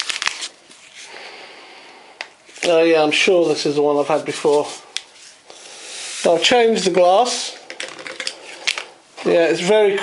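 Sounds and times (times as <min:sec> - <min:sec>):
foil sachet tearing: 0:00.0 - 0:01.1
soft rustle: 0:00.0 - 0:01.1, 0:02.5 - 0:05.4.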